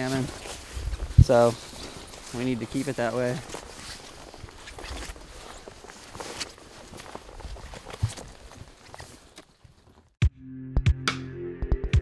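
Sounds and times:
brush rustling against clothing: 0.0 - 10.0
footsteps crunching on forest floor: 0.0 - 10.1.

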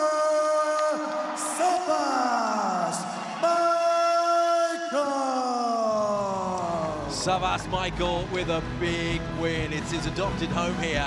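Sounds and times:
music with deep bass: 7.3 - 11.0.

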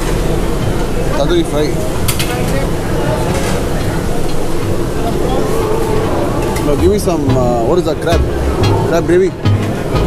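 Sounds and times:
eatery background din: 0.0 - 10.0
faint voices: 0.0 - 10.0.

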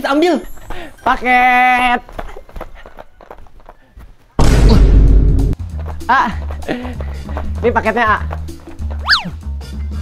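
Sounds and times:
loud boom with low rumble: 4.4 - 5.6.

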